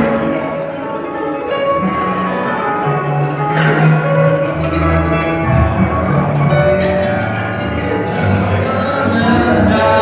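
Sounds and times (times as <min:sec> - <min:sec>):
piano playing: 0:00.0 - 0:10.0
sustained bass notes: 0:00.0 - 0:10.0.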